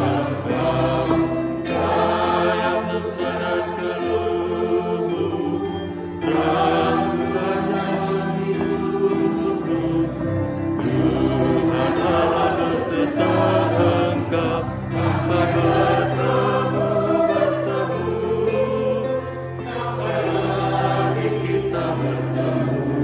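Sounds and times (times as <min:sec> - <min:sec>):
instrumental accompaniment low notes: 0:00.0 - 0:23.0
voices singing a hymn: 0:00.0 - 0:23.0.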